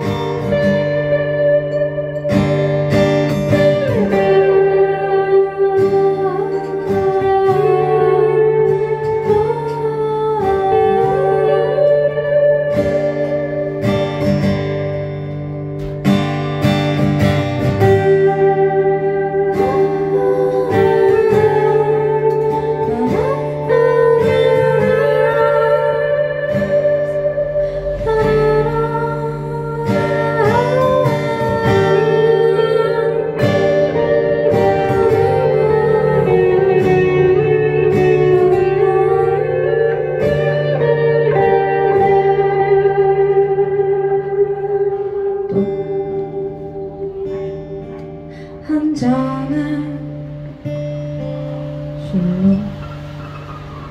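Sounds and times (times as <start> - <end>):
acoustic guitar: 0.0 - 53.9
electric guitar: 0.0 - 53.9
woman singing: 3.4 - 13.6, 17.8 - 50.6, 52.0 - 52.9.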